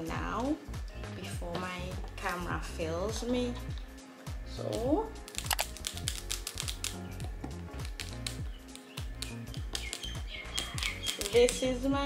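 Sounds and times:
sharp ticking percussion: 7.9 - 11.7.

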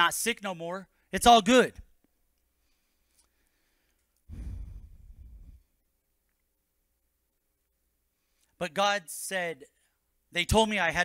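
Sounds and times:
man sighing into microphone: 4.3 - 5.6.

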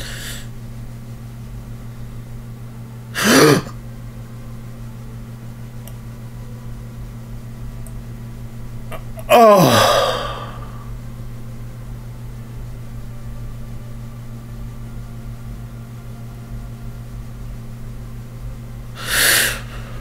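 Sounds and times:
steady low hum: 0.0 - 20.0
gasp-like vocal outbursts: 9.3 - 10.7.

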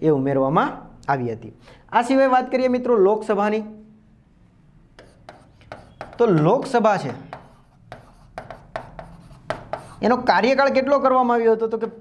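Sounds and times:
stylus tapping and scratching screen: 4.9 - 10.6.

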